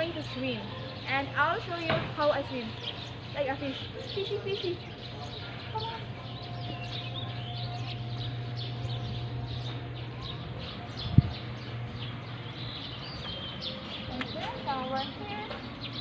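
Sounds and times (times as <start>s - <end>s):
small birds chirping: 0.0s - 16.0s
steady low hum: 0.0s - 16.0s.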